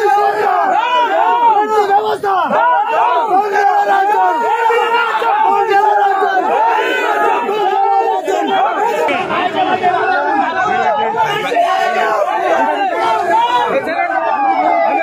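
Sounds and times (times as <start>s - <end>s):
crowd of men shouting: 0.0s - 15.0s.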